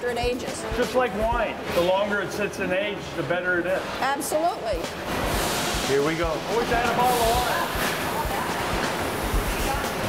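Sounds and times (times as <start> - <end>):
processing machinery rushing: 4.8 - 10.0.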